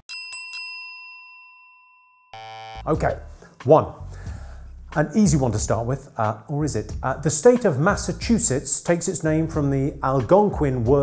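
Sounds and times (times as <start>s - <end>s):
bell-like chime ringing: 0.0s - 3.7s.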